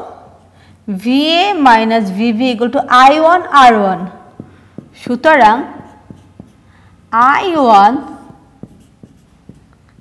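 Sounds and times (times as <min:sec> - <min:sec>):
marker writing on whiteboard: 0:04.3 - 0:06.8, 0:07.9 - 0:10.0
marker tapping whiteboard: 0:04.4 - 0:06.7, 0:08.1 - 0:10.0.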